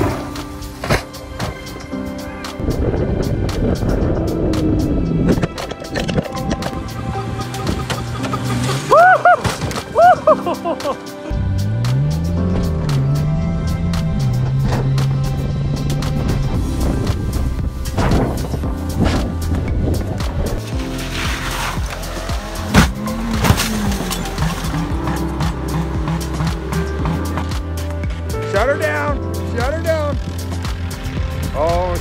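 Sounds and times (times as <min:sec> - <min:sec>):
background music: 0:00.0 - 0:32.0
car crash impact: 0:07.7 - 0:10.1, 0:20.7 - 0:24.8.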